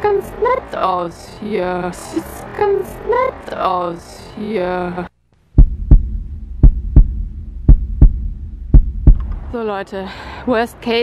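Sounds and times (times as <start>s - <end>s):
low steady hum: 0.0s - 10.3s
heartbeat thumps: 5.5s - 9.6s.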